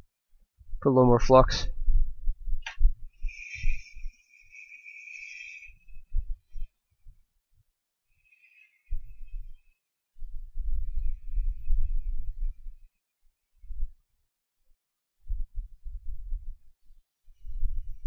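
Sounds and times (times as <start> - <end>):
hot air station hissing: 3.2 - 6.1.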